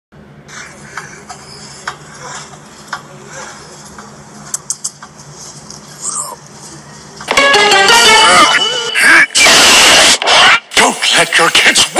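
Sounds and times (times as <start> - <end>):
cartoon voice with music: 7.4 - 9.5.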